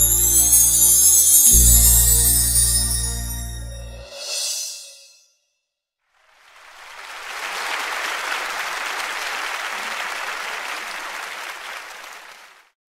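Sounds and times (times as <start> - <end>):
audience applause: 6.2 - 12.8.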